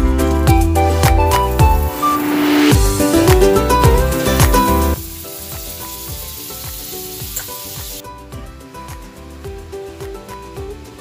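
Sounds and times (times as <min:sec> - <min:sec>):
soft background music with beat: 0:00.0 - 0:11.0
butter sizzling in hot oil: 0:01.7 - 0:08.0.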